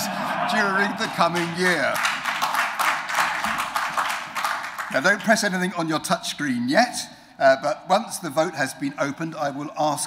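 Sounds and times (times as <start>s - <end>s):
crowd applauding: 0.0s - 5.5s.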